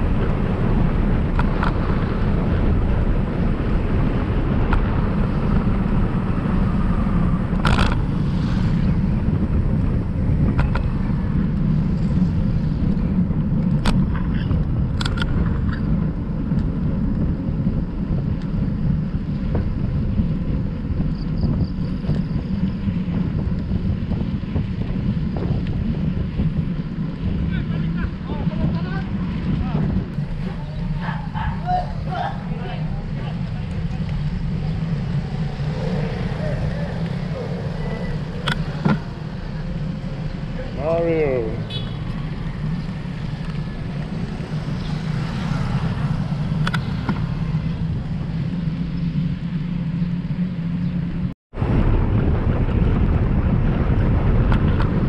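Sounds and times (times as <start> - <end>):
bicycle tyre rumble on concrete: 0.0 - 55.0
wind buffeting microphone: 0.0 - 55.0
sharp clicks: 46.6 - 47.2.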